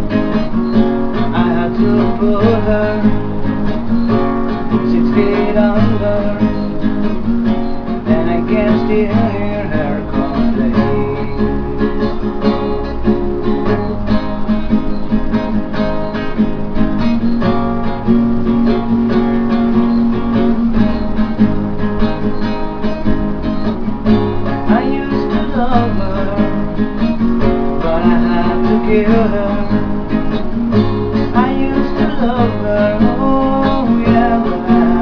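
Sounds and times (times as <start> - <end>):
acoustic guitar strumming: 0.0 - 35.0.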